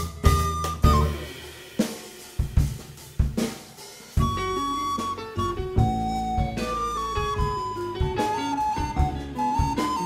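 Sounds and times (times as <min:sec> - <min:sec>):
recorder high note: 0:00.0 - 0:01.6, 0:04.2 - 0:10.0
bass and drums: 0:00.0 - 0:10.0
drum kit sharp accents: 0:00.0 - 0:10.0.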